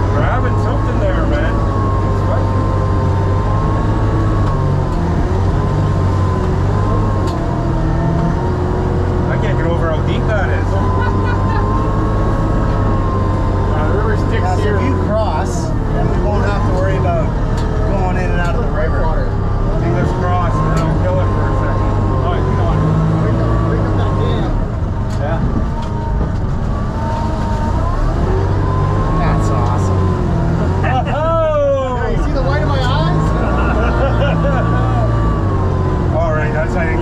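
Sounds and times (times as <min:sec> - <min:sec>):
diesel engine droning: 0:00.0 - 0:37.0
faint voices: 0:00.0 - 0:37.0.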